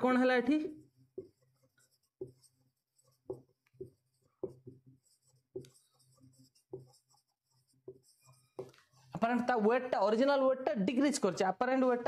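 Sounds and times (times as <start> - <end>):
marker pen writing on whiteboard: 0.0 - 10.2.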